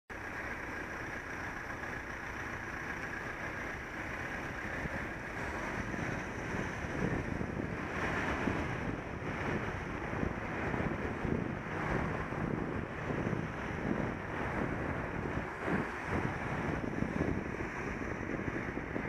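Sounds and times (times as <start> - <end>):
road noise hiss: 0.1 - 19.0
wind buffeting microphone: 3.4 - 19.0.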